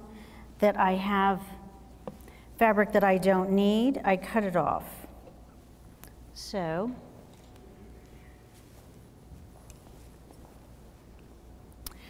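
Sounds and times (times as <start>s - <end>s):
quiet room hum: 0.0s - 12.0s.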